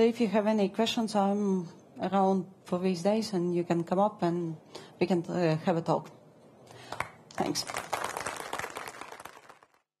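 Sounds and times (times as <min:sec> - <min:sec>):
audience applause: 0:06.9 - 0:09.9.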